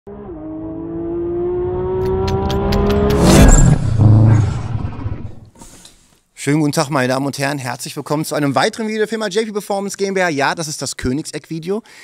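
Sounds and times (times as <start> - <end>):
car engine revving: 0.1 - 5.4.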